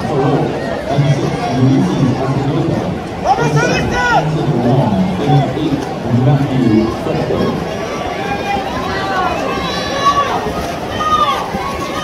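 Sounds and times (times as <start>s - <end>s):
spectators yelling and cheering: 0.0s - 12.0s.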